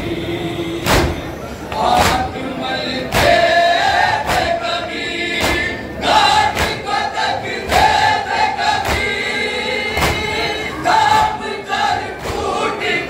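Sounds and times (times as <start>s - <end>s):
men chanting together: 0.0s - 13.0s
unison chest-beating slaps: 0.8s - 1.2s, 1.9s - 2.3s, 3.1s - 3.4s, 4.2s - 4.6s, 5.4s - 5.8s, 6.5s - 6.9s, 8.8s - 9.2s, 10.0s - 10.4s, 12.2s - 12.6s.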